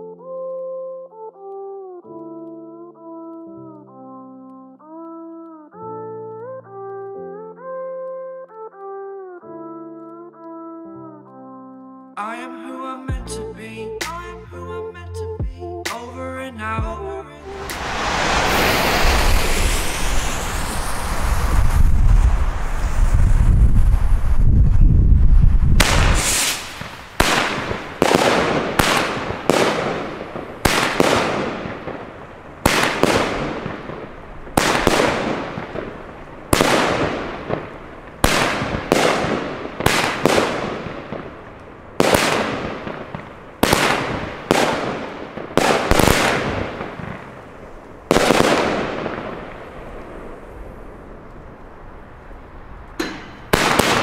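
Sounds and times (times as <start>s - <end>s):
firework shots: 17.5s - 24.4s, 25.7s - 51.7s, 53.0s - 54.0s
deep rumble: 17.5s - 26.0s.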